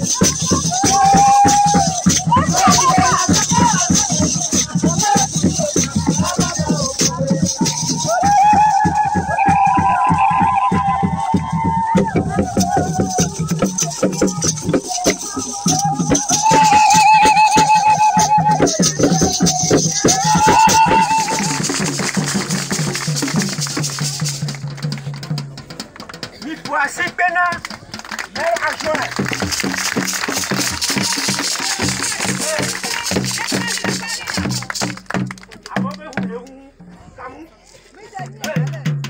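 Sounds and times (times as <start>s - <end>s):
shaker rattles: 0.0s - 35.9s
hand drumming: 0.0s - 36.4s
people singing: 12.2s - 21.7s.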